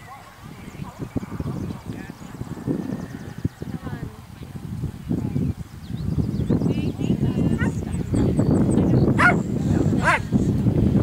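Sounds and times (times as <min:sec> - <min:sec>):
horse hooves rumbling: 0:00.0 - 0:11.0.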